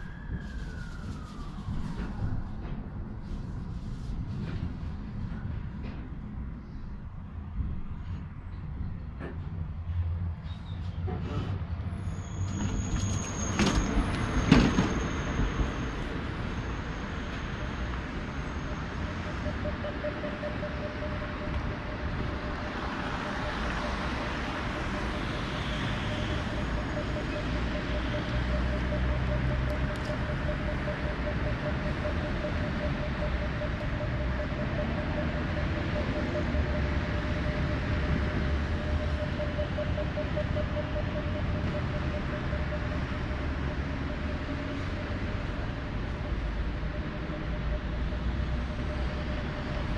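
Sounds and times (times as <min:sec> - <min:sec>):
low traffic rumble: 0:00.0 - 0:49.9
tram high hum: 0:00.0 - 0:49.9.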